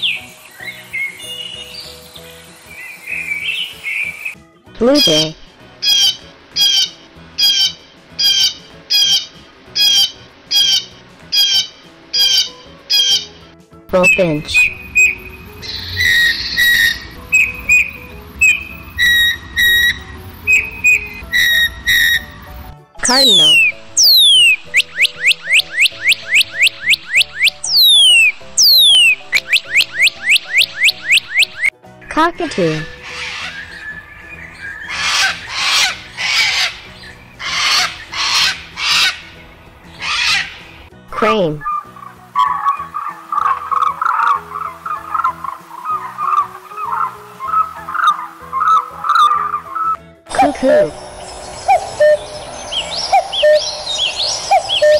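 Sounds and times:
background music: 0.0s - 54.9s
cranes calling: 5.0s - 13.4s, 14.0s - 22.6s, 23.2s - 31.7s, 32.9s - 40.9s, 41.6s - 54.9s
bird singing whistles: 14.0s - 31.7s, 33.2s - 38.3s, 50.6s - 54.9s.

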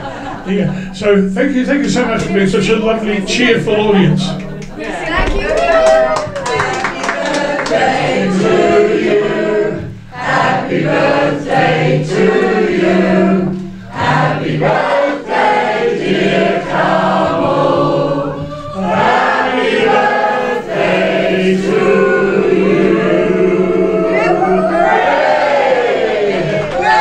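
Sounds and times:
party guests singing together: 5.0s - 27.0s.

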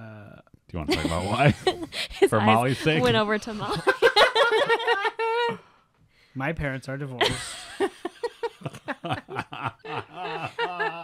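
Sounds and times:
people chuckling: 7.2s - 11.0s.

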